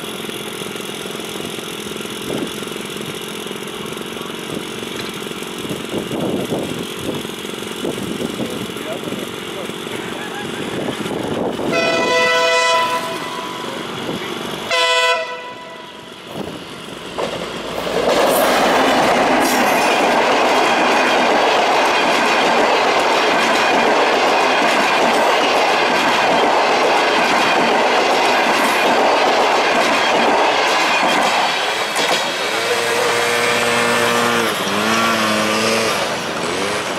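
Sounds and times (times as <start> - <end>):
train rumble with wheel clatter: 0.0 - 36.9
train horn: 11.7 - 13.9, 14.7 - 16.0.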